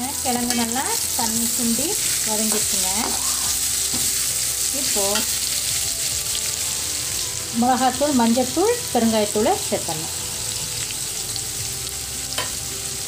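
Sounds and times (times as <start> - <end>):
potatoes sizzling in oil: 0.0 - 13.0.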